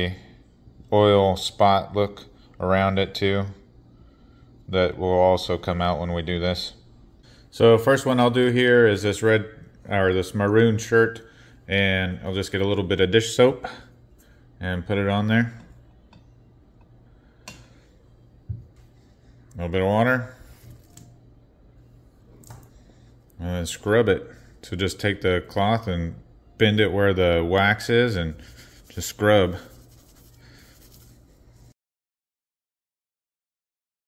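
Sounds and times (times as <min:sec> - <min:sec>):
wet fabric rubbing: 0:28.4 - 0:31.7.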